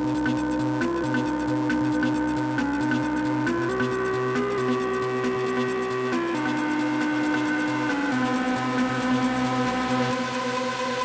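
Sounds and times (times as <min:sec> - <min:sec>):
held synth chords: 0:00.0 - 0:11.0.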